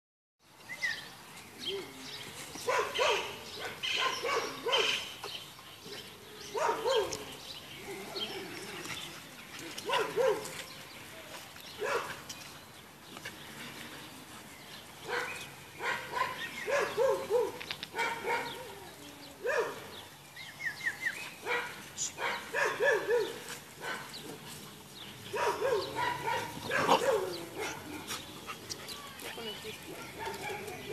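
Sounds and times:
dogs barking: 0:02.6 - 0:05.1, 0:06.5 - 0:07.4, 0:09.7 - 0:10.7, 0:11.8 - 0:12.2, 0:15.0 - 0:18.7, 0:19.4 - 0:20.0, 0:21.4 - 0:30.9.

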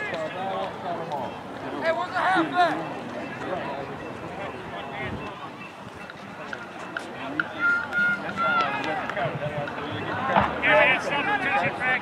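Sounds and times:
voices calling out and chattering: 0:00.0 - 0:12.0.

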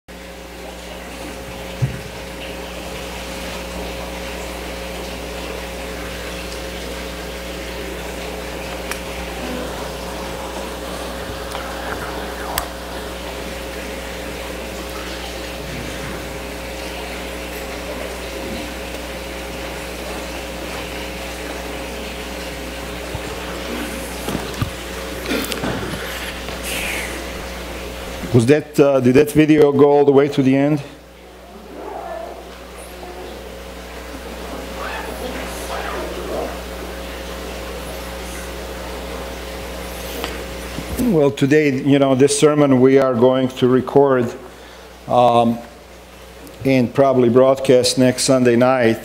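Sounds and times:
electrical hum: 0:00.1 - 0:49.0
hiss: 0:26.6 - 0:27.2.

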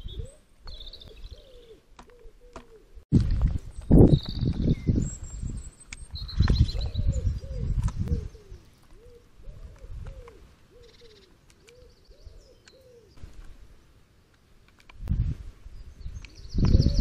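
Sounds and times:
small bird chirping: 0:00.0 - 0:02.3, 0:03.7 - 0:13.2, 0:15.8 - 0:17.0
pigeon cooing: 0:00.0 - 0:03.0, 0:06.8 - 0:13.2.

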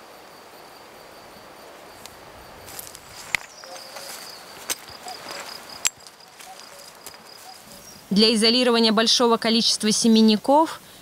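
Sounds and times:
open field ambience: 0:00.0 - 0:11.0
insect trilling: 0:01.1 - 0:09.0
netting rustling: 0:02.7 - 0:08.1.

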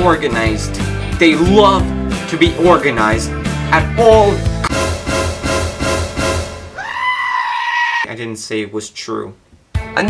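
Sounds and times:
music with a beat: 0:00.1 - 0:06.7
high-pitched scream: 0:06.8 - 0:08.1.

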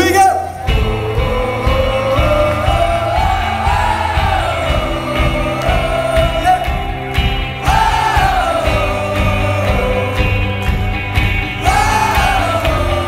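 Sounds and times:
guitars: 0:00.0 - 0:13.0
keyboard: 0:00.0 - 0:13.0
steady drum beat: 0:00.6 - 0:13.0
person singing long held notes: 0:00.7 - 0:07.0.

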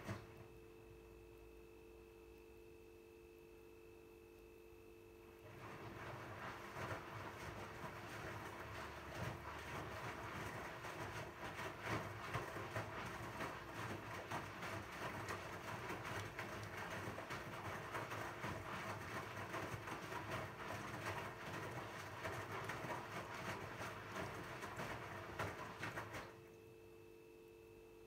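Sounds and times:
washing machine motor hum: 0:00.0 - 0:02.3, 0:05.2 - 0:26.6
washing machine load swishing: 0:05.5 - 0:26.4.

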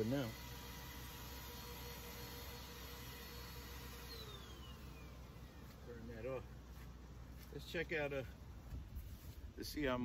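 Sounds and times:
faint falling whine: 0:01.4 - 0:08.4.

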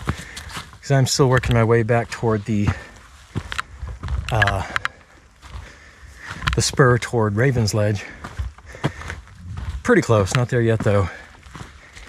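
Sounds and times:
footsteps on forest trail: 0:00.0 - 0:12.0.

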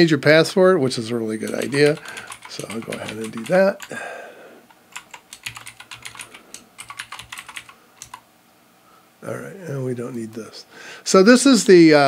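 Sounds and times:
typing on computer keyboard: 0:01.4 - 0:04.0, 0:04.7 - 0:08.2.

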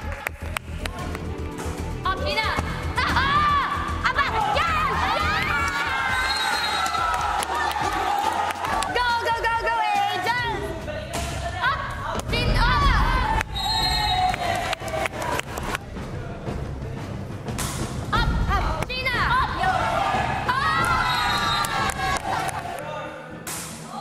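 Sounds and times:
background music: 0:00.0 - 0:24.0
players shouting and cheering: 0:02.3 - 0:15.8, 0:18.2 - 0:24.0.

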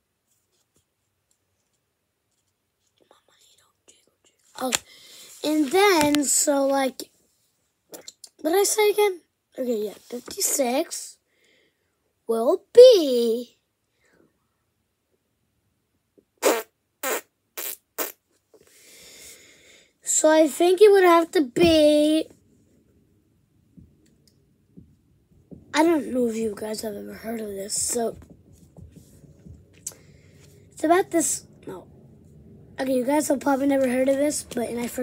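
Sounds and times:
child whispering: 0:03.0 - 0:05.8
child speaking aloud: 0:12.3 - 0:13.5, 0:25.7 - 0:28.2, 0:30.8 - 0:31.8, 0:32.8 - 0:35.0
child blowing fart-like noises: 0:16.4 - 0:18.2.

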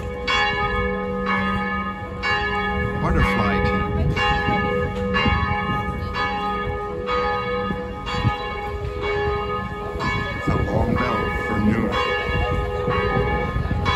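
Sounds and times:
church bells ringing: 0:00.0 - 0:13.9.

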